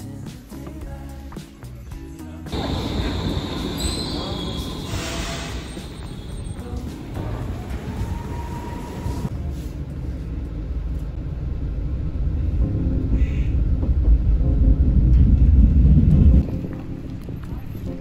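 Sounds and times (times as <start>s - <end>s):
train rumbling: 2.5s - 18.0s.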